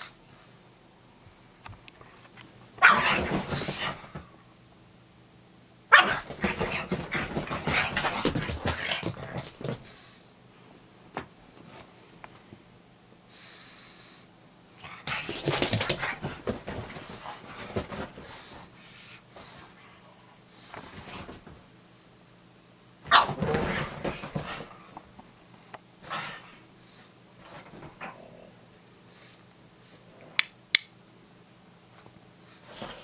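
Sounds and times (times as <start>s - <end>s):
dog barking: 2.8s - 3.3s, 5.9s - 6.3s.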